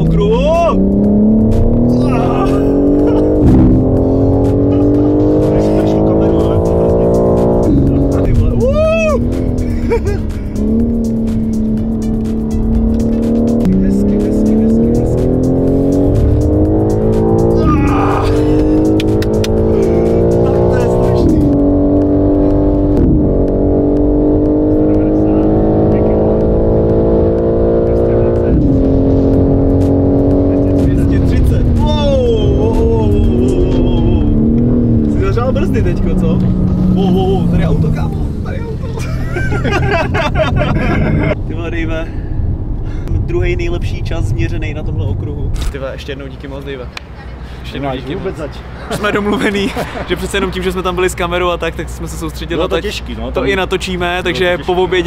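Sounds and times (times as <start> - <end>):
car engine at full throttle: 0.0 - 55.0.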